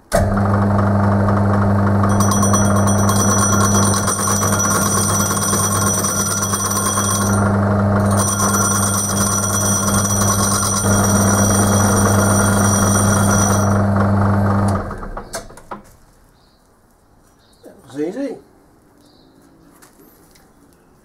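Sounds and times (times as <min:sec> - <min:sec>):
lathe motor humming: 0:00.1 - 0:15.3
high-pitched cutting ring: 0:02.0 - 0:14.0.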